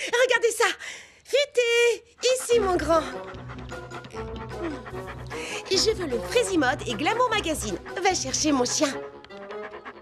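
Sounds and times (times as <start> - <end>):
cartoon background music: 2.3 - 10.0.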